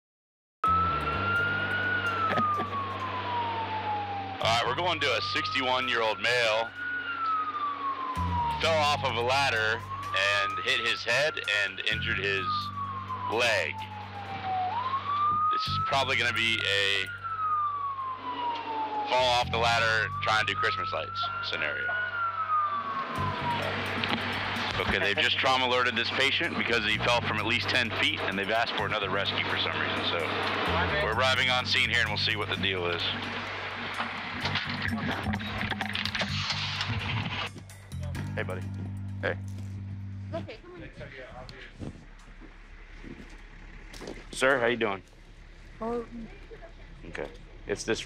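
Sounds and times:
siren wailing: 0.6 - 48.0
vehicle engine drone: 0.6 - 48.0.

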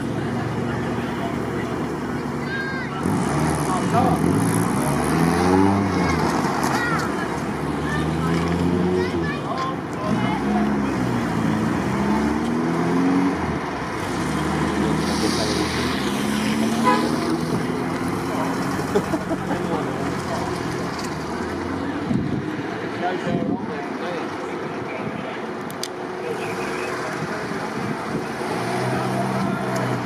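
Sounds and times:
car engines accelerating past: 3.0 - 9.4, 10.0 - 22.8, 26.2 - 30.0.

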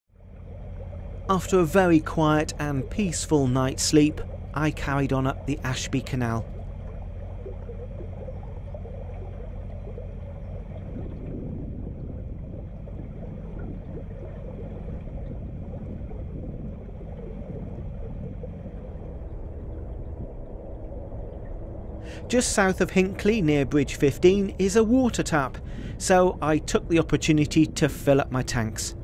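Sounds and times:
diesel engine humming: 0.2 - 29.0
water moving along hull: 0.2 - 29.0.

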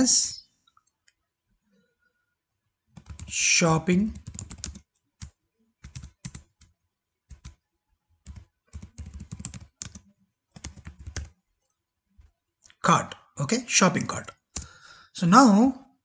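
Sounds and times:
computer keyboard typing: 2.9 - 3.4, 4.0 - 7.6, 8.2 - 11.4, 14.2 - 14.7.

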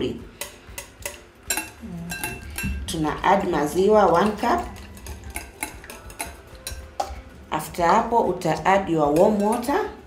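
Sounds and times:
whisk tapping glass bowl: 0.2 - 7.3, 8.6 - 9.9.

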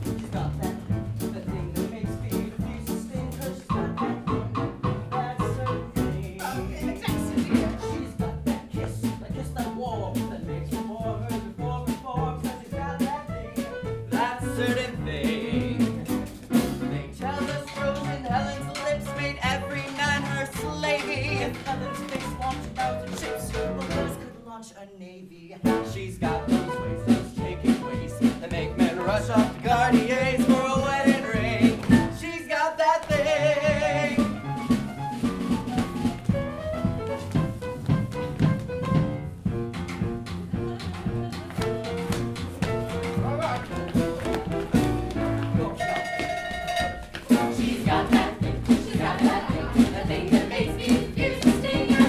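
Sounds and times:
upright bass: 0.0 - 24.3, 25.6 - 32.4, 33.1 - 45.8, 47.3 - 52.0
jazz band playing swing: 0.0 - 24.4, 25.6 - 52.0
piano: 0.0 - 24.6, 25.6 - 52.0.

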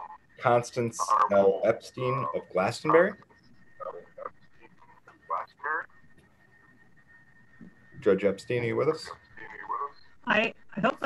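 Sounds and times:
high-pitched wavering whining cries: 0.0 - 11.0
audio feedback whistle: 4.8 - 10.2.

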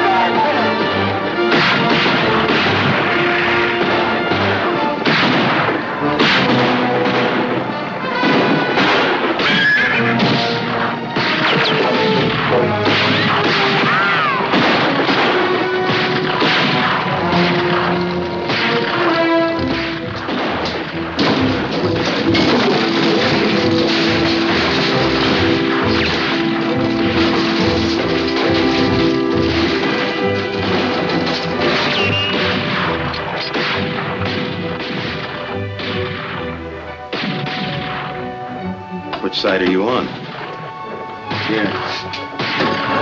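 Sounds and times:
gunfire bangs and blasts: 0.0 - 38.5, 39.8 - 43.0
orchestral film score: 0.0 - 43.0.

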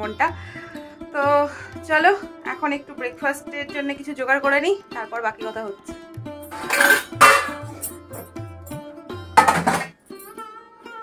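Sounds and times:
background music: 0.0 - 11.0
steel kitchenware clattering: 6.5 - 8.3, 9.4 - 9.9.

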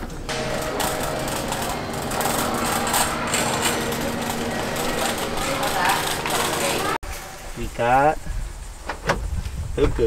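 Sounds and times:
shopping cart rattling: 0.3 - 7.0.

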